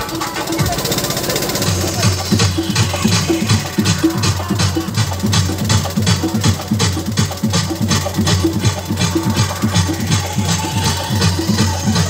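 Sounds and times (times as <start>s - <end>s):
dance music over sound system: 0.0s - 12.0s
thudding bass beat: 0.0s - 12.0s.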